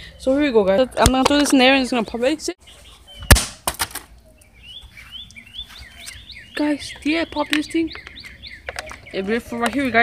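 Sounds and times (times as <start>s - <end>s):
small birds chirping: 1.5s - 10.0s.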